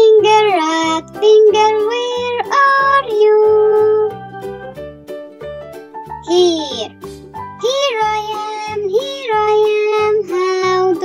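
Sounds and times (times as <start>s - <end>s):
backing music with steady beat: 0.1s - 11.0s.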